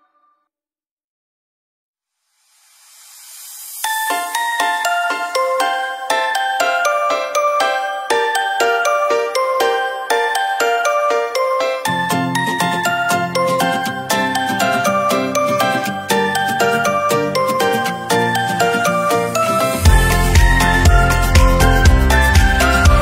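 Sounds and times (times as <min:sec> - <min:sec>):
melody of high notes: 0:03.8 - 0:23.0
low bass part: 0:19.9 - 0:23.0.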